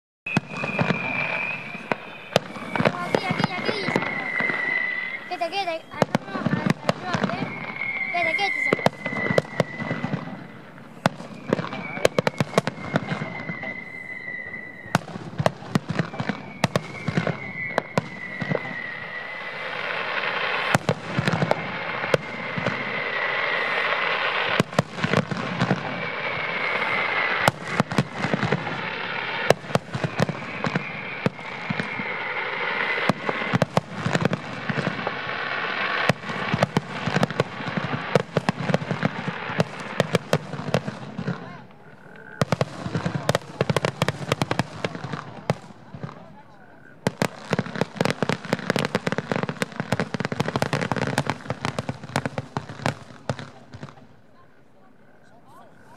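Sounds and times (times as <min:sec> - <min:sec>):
firework shells bursting: 0:00.3 - 0:41.5
firework whistles falling in pitch: 0:00.3 - 0:41.7, 0:42.4 - 0:46.2, 0:47.0 - 0:54.0
dense firework crackling: 0:00.3 - 0:54.5.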